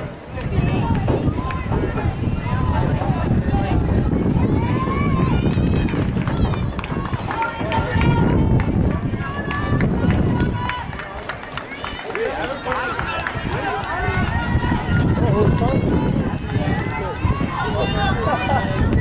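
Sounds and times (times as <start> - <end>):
spectators talking: 0.0 - 19.0.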